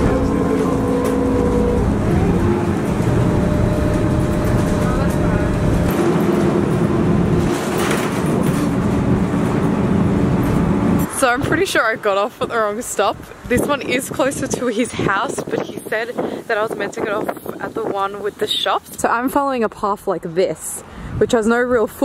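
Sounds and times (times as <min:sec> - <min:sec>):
droning whine: 0:00.0 - 0:12.0
bus engine and road rumble: 0:00.0 - 0:22.0.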